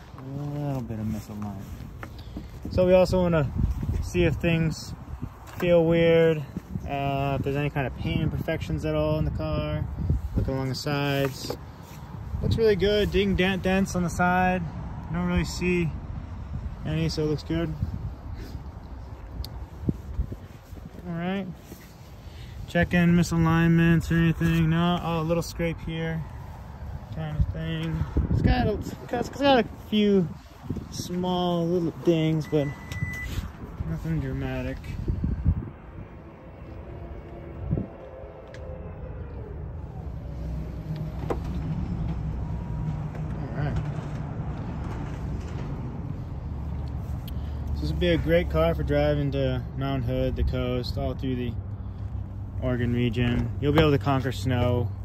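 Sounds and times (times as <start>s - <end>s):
low outdoor rumble: 0.0s - 55.0s.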